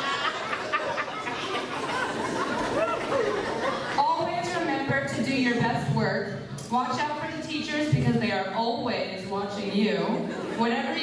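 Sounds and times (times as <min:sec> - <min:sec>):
crowd chattering: 0:00.0 - 0:05.8, 0:09.6 - 0:11.0.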